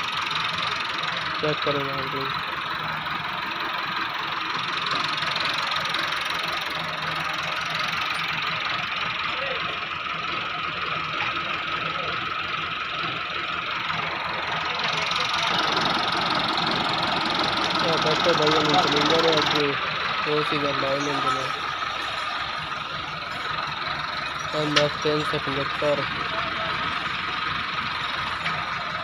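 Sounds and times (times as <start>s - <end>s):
tractor diesel engine idling: 0.0s - 29.0s.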